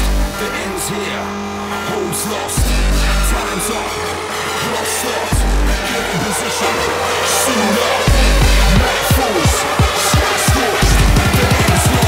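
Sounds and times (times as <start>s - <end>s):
gliding bass tones: 0.0s - 12.0s
deep sub-bass hit: 2.6s - 3.4s, 5.4s - 6.0s, 8.1s - 8.9s, 10.8s - 11.4s.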